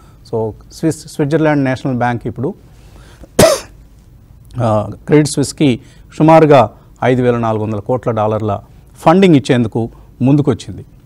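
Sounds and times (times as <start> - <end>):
man coughing: 3.4 - 3.8.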